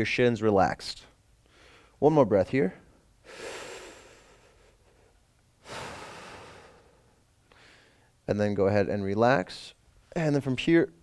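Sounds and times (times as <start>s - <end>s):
man breathing: 1.4s - 2.0s, 3.2s - 8.2s.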